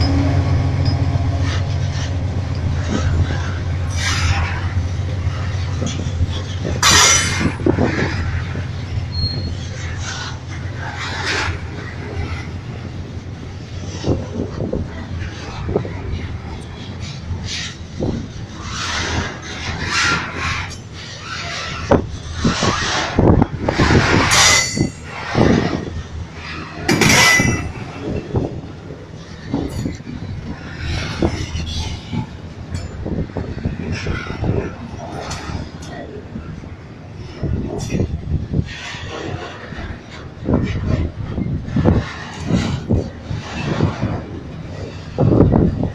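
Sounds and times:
train wheels rumbling on rails: 0:00.0 - 0:45.9
high wheel squeals: 0:09.0 - 0:09.8.

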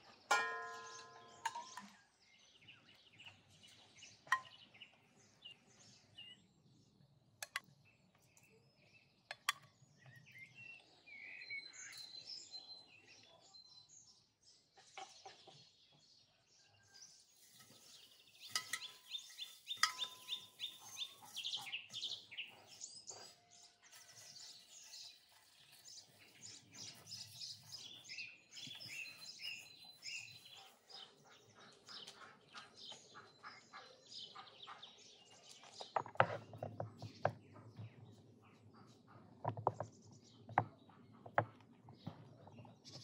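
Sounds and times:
birds chirping and trilling: 0:00.0 - 0:43.0.

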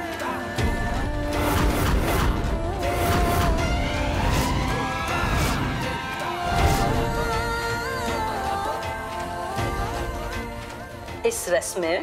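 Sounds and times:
dramatic background score: 0:00.1 - 0:12.0
whooshing sound effect: 0:01.4 - 0:07.2.

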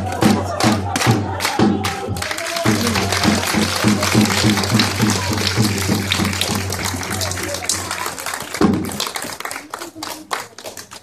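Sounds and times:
people clapping: 0:00.0 - 0:11.0.

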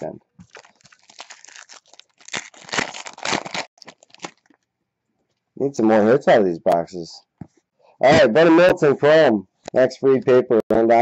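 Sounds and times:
foil wrapper crinkling and tearing: 0:00.4 - 0:04.6.

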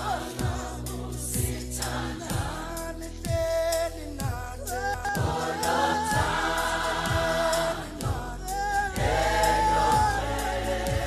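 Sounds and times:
choir singing gospel song: 0:00.0 - 0:11.0.

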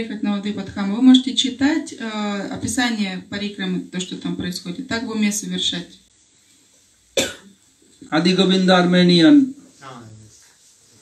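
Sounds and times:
person coughing: 0:07.2 - 0:07.6.

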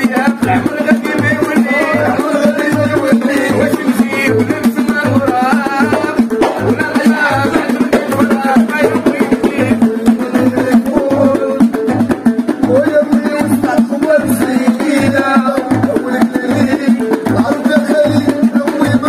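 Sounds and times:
frame drums with jingles: 0:00.0 - 0:19.0
men singing: 0:00.0 - 0:19.0.

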